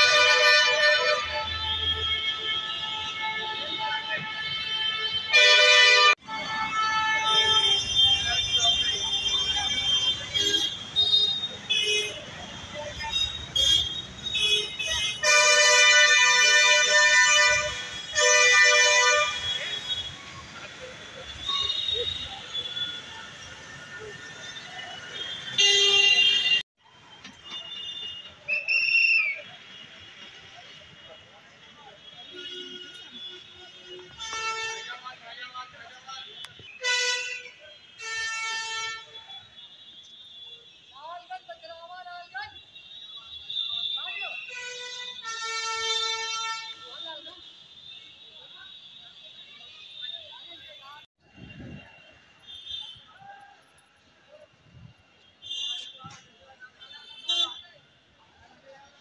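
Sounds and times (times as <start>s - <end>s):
vehicle horns honking: 0.0s - 26.6s, 31.6s - 35.2s, 35.9s - 41.4s, 42.4s - 53.2s, 55.2s - 57.8s.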